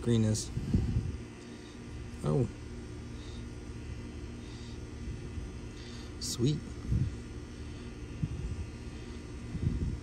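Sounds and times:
low rumble with engine hum: 0:00.0 - 0:10.0.

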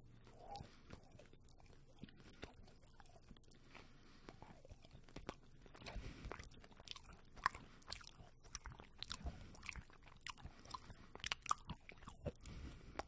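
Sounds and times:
chewing crunchy snack bar: 0:00.0 - 0:13.0
wet mouth clicks: 0:00.0 - 0:13.0.

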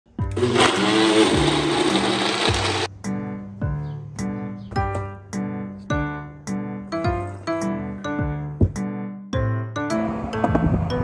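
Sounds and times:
blender motor running: 0:00.3 - 0:02.9
background music with steady beat: 0:02.6 - 0:11.0.

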